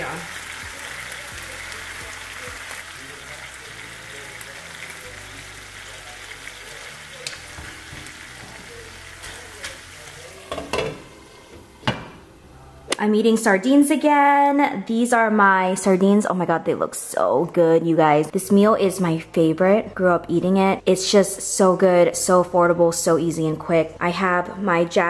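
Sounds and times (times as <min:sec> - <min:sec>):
fish sizzling in a pan: 0:00.0 - 0:11.8.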